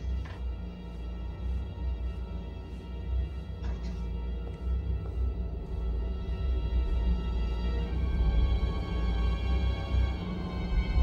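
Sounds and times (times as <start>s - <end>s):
deep low drone: 0.0s - 11.0s.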